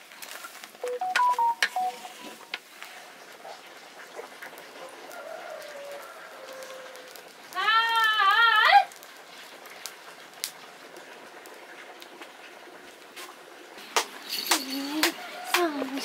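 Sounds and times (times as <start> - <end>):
wood fire crackling: 0.0 - 16.0.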